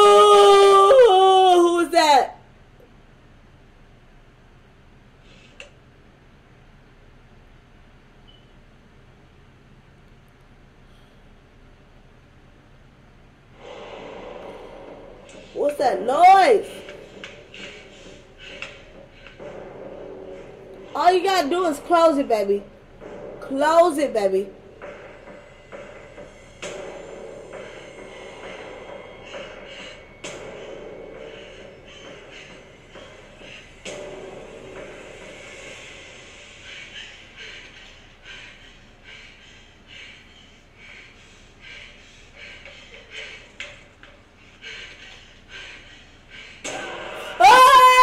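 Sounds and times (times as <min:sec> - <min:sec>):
person breathing heavily: 0:13.5 - 0:15.7, 0:16.7 - 0:22.2, 0:27.1 - 0:47.4
sustained noisy swell: 0:13.6 - 0:37.2.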